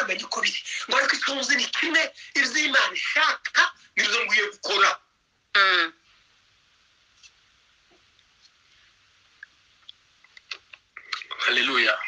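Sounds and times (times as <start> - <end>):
faint hiss: 0.0 - 12.0.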